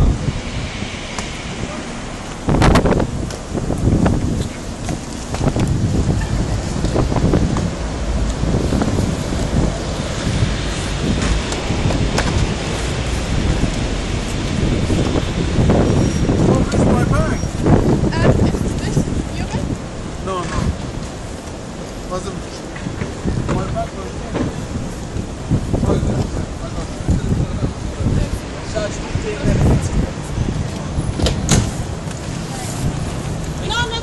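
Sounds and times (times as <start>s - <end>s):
indistinct voices: 0.0s - 20.8s
wind buffeting microphone: 0.0s - 34.0s.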